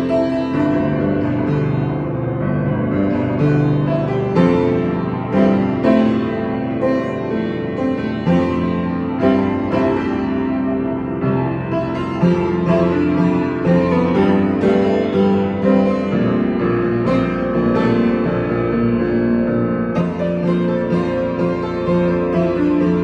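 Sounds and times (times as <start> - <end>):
acoustic piano playing: 0.0 - 23.0.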